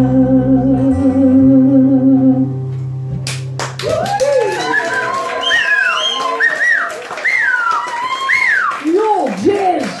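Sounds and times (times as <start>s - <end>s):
person whooping: 3.8s - 8.8s.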